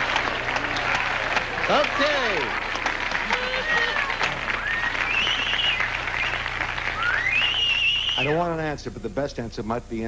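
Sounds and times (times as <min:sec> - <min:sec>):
audience applauding: 0:00.0 - 0:08.6
audience laughing: 0:02.4 - 0:05.8.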